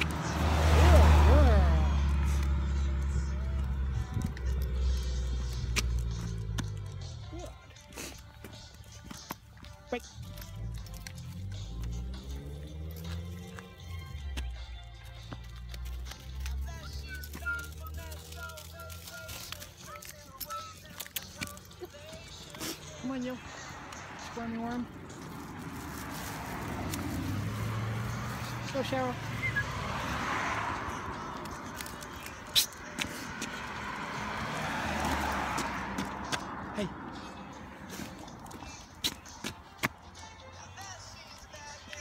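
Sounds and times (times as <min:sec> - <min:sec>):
car driving past: 0:00.0 - 0:07.0, 0:11.2 - 0:14.2, 0:22.5 - 0:38.8
faint passing traffic: 0:00.0 - 0:42.0.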